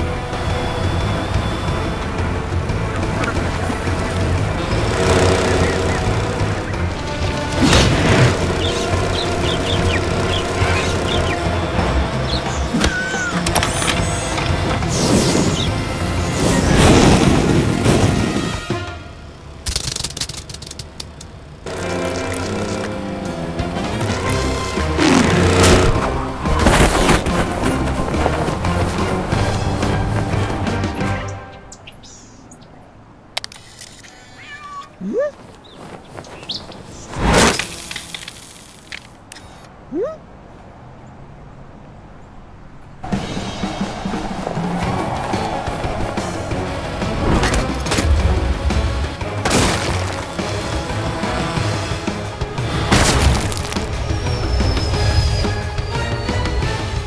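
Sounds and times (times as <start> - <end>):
cat meowing: 34.2 - 35.2.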